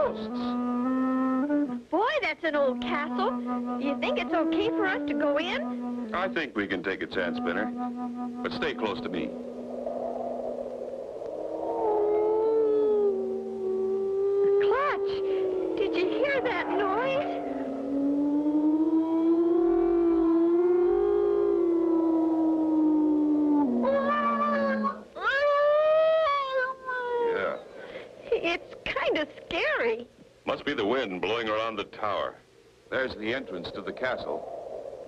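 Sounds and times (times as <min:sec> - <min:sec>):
swooping cries: 0:02.9 - 0:30.1
person speaking: 0:08.4 - 0:09.4
eerie howling wind effect: 0:08.4 - 0:24.9, 0:32.9 - 0:35.0.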